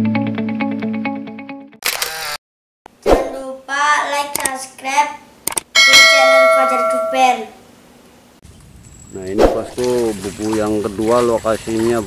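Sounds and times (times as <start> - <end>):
child talking: 3.2 - 5.3, 5.9 - 7.6
bright chime-like tone: 5.8 - 7.6.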